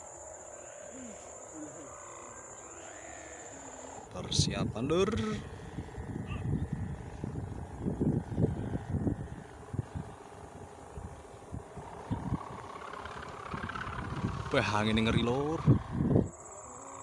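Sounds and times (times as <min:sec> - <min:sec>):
wind buffeting microphone: 0:04.0 - 0:16.5.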